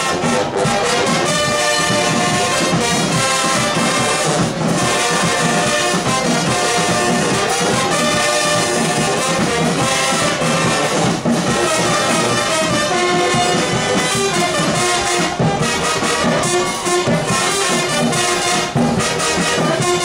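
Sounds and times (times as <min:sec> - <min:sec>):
marching band playing: 0:00.0 - 0:20.0.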